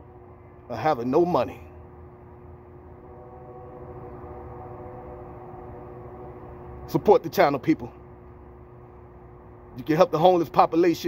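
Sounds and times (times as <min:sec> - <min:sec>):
hum of held tones: 0:00.0 - 0:11.0
low rumble: 0:01.8 - 0:09.8.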